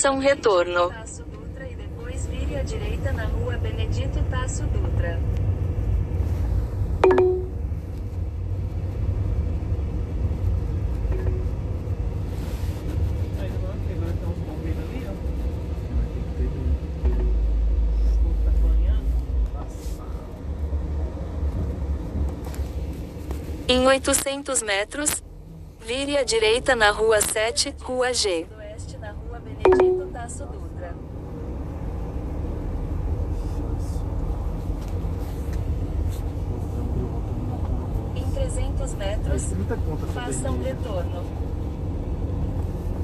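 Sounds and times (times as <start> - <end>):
car engine rumble: 0.0 - 43.0
road noise: 0.0 - 43.0
short sharp tone: 7.0 - 7.6, 29.7 - 30.3.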